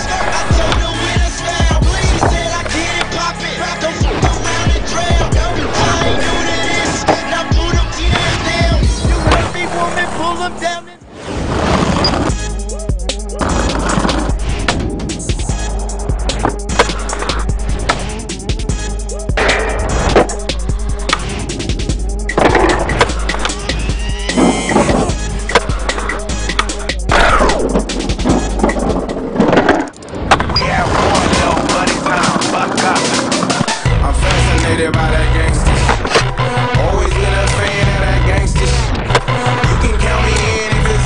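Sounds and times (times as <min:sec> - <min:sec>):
skateboard knocking and sliding: 0:00.0 - 0:03.2, 0:04.1 - 0:09.6, 0:13.4 - 0:18.8, 0:19.4 - 0:41.0
skateboard wheels rolling on concrete: 0:00.0 - 0:03.3, 0:03.9 - 0:12.6, 0:13.3 - 0:19.0, 0:19.8 - 0:41.0
music with steady beat: 0:00.0 - 0:09.5, 0:12.3 - 0:29.6, 0:31.0 - 0:41.0.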